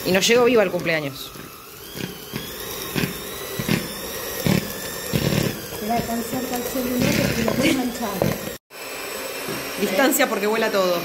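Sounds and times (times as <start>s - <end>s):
electric hand mixer whine: 0.0s - 11.0s.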